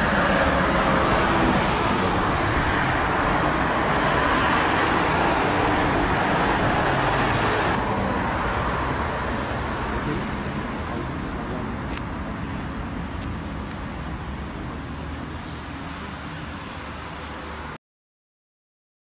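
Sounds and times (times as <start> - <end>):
road traffic noise: 0.0 - 17.8.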